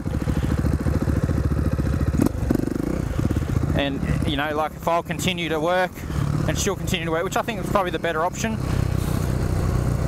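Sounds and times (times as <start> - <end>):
dirt bike engine running: 0.0 - 10.0.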